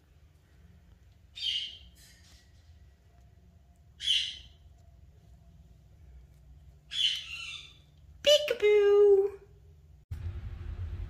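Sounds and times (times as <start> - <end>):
parakeet squawking: 4.0 - 4.6, 6.9 - 7.9.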